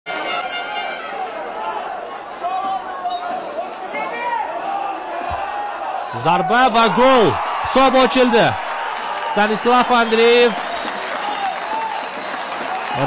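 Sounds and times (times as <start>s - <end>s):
stadium crowd murmur: 0.1s - 13.0s.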